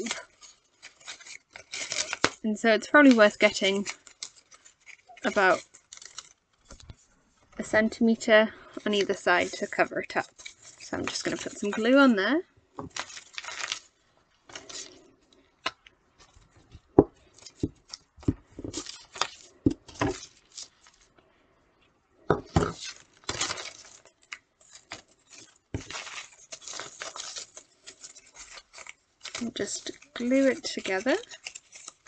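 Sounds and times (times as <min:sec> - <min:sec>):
paper rustling and crinkling: 0:00.0 - 0:12.1, 0:12.8 - 0:21.1, 0:22.4 - 0:32.0.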